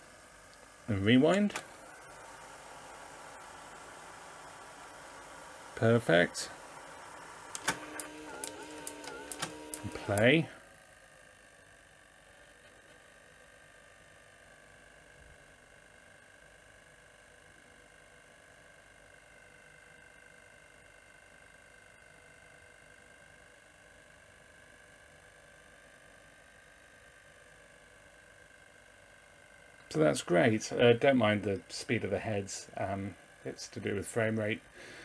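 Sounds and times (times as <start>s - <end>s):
faint high whine of video player: 0.0s - 35.0s.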